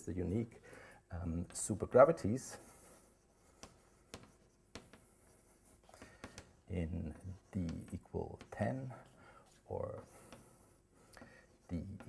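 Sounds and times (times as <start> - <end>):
chalk taps and scrapes: 1.2 - 12.0
chalk writing on a blackboard: 1.3 - 12.0.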